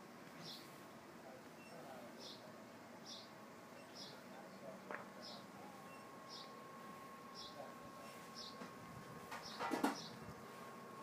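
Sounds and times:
birds chirping: 0:00.3 - 0:00.8, 0:01.4 - 0:11.0.

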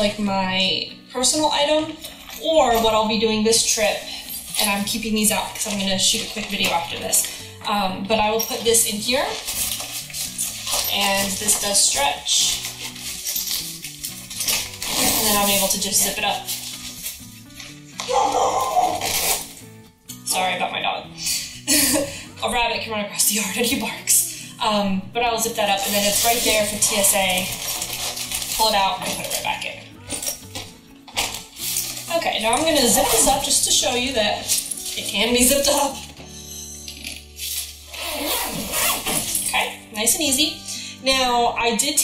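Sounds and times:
quiet background music: 0:00.0 - 0:42.0
suitcase zipper rasping: 0:08.4 - 0:19.8, 0:25.8 - 0:36.1, 0:37.4 - 0:40.0
dog barking: 0:18.1 - 0:18.7.

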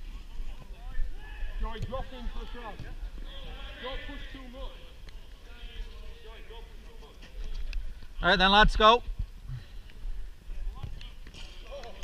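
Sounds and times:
men talking and calling: 0:00.0 - 0:09.1.

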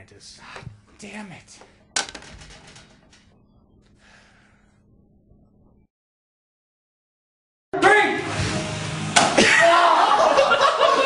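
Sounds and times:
hand slapping a person: 0:09.2 - 0:09.4.

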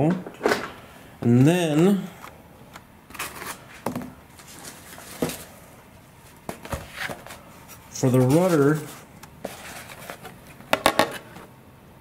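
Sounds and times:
soft rustling: 0:06.2 - 0:10.6.

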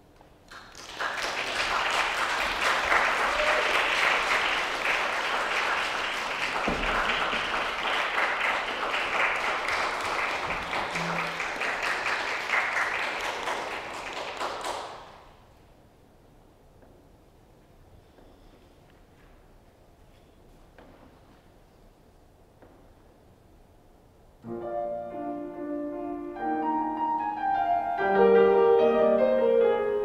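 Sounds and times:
audience applauding: 0:00.5 - 0:15.3.

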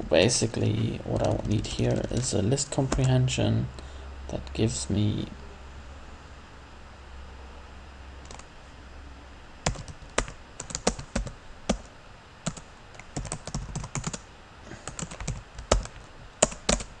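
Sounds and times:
typing on computer keyboard: 0:08.2 - 0:08.4, 0:09.7 - 0:11.9, 0:12.5 - 0:14.2, 0:14.8 - 0:16.9.

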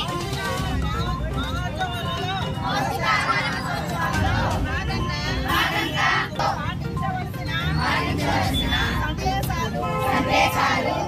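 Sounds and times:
women reciting together: 0:02.6 - 0:11.0.

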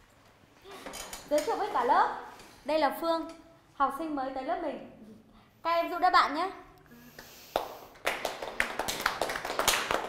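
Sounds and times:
people clapping: 0:07.1 - 0:10.0.

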